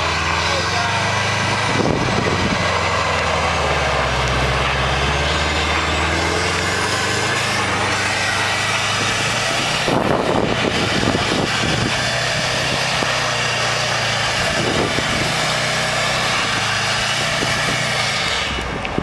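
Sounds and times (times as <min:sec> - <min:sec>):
car engine running: 0:00.0 - 0:19.0
rushing noise: 0:00.0 - 0:19.0.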